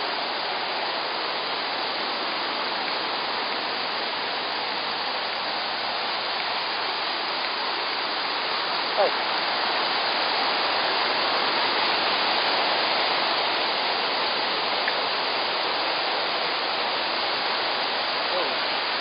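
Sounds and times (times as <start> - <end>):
rushing white-water cascades: 0.0 - 19.0.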